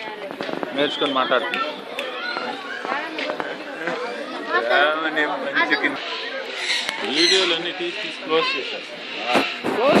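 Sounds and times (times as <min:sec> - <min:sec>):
people chattering: 0:00.0 - 0:10.0
high-pitched bird calls: 0:06.0 - 0:09.4.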